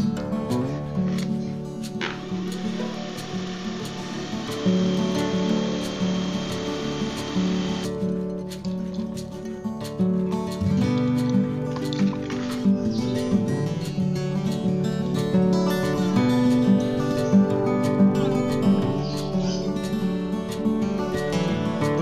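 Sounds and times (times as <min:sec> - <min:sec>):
acoustic guitar music: 0:00.0 - 0:22.0
cordless drill whining: 0:02.1 - 0:08.0.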